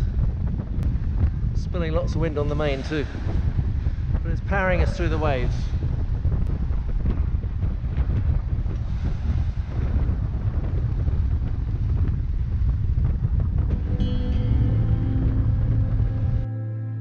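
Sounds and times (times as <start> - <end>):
water rushing along a hull: 0.0 - 16.4
wind buffeting the microphone: 0.0 - 16.5
music: 13.7 - 17.0.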